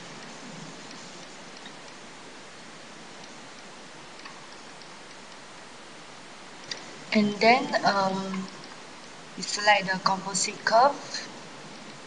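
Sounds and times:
steady faint hiss: 0:00.0 - 0:12.0
computer mouse clicks: 0:00.2 - 0:02.0, 0:03.2 - 0:05.4.

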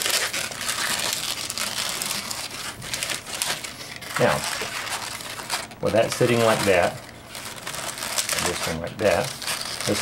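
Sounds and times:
balloons rubbing together: 0:00.0 - 0:10.0.

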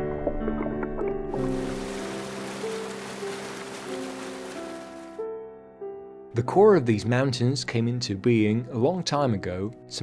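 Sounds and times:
slow sustained background music: 0:00.0 - 0:10.0
rushing whitewater stream: 0:01.4 - 0:05.2.

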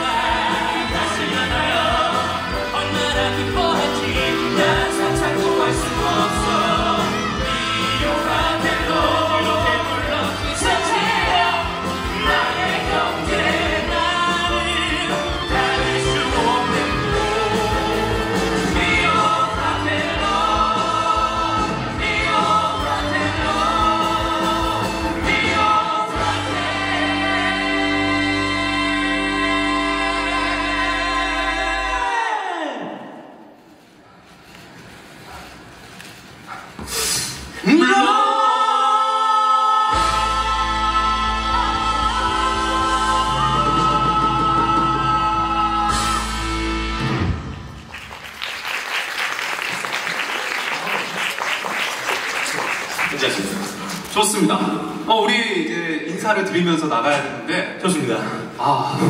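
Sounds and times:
men singing in harmony: 0:00.0 - 0:32.4, 0:37.7 - 0:46.8.

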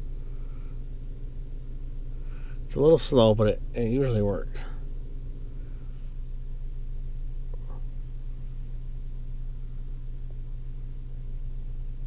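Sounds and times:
car cabin hum: 0:00.0 - 0:12.0.

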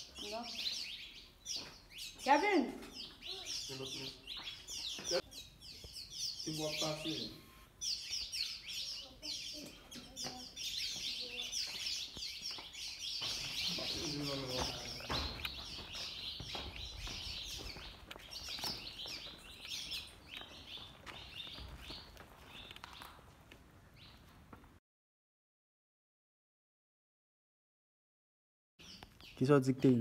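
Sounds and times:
rapid high chirping chorus: 0:00.0 - 0:23.1.

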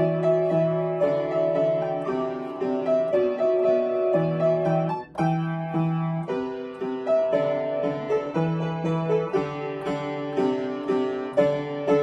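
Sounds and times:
piano chords and melody: 0:00.0 - 0:12.0.

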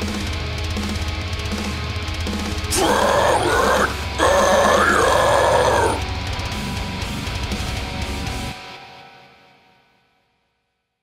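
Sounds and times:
heavy metal backing track: 0:00.0 - 0:09.7
harsh guttural growl: 0:02.7 - 0:06.1.

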